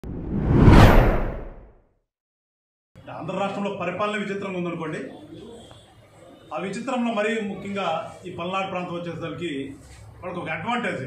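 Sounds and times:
whoosh with deep rumble: 0.0s - 1.7s.

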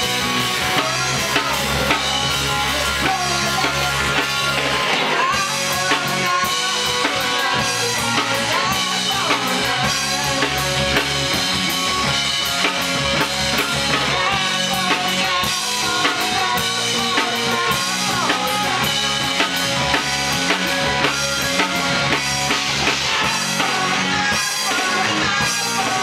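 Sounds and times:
drum kit with cymbals: 0.0s - 26.0s
electric guitars: 0.0s - 26.0s.

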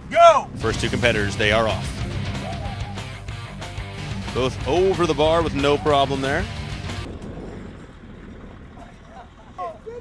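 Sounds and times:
low rumbling wind on microphone: 0.0s - 10.0s.

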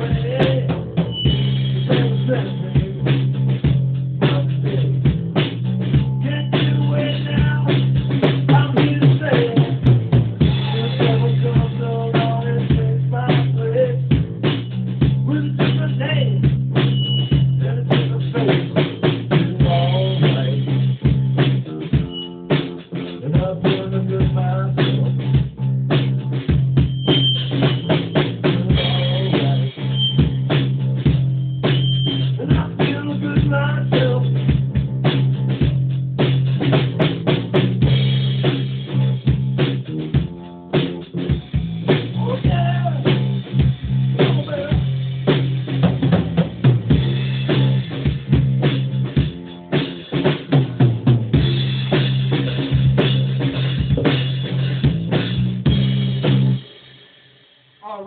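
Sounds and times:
guitar: 0.0s - 56.9s
bass guitar: 0.0s - 58.0s
drum kit played hard: 0.0s - 58.0s.

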